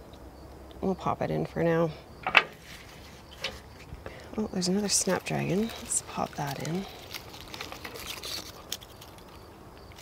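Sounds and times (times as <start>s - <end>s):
flower stems rustling: 2.2s - 10.0s.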